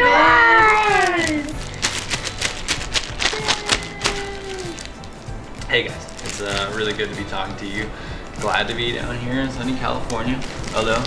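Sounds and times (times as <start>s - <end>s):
people clapping: 0.8s - 5.0s.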